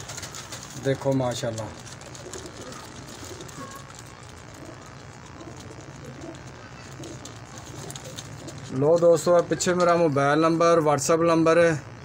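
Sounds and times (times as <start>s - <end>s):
pigeons cooing: 0.0s - 10.7s
low background hum: 0.0s - 12.0s.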